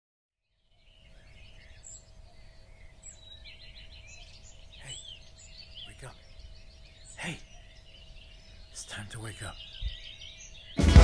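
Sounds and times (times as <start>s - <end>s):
birds chirping and calling: 0.5s - 11.0s.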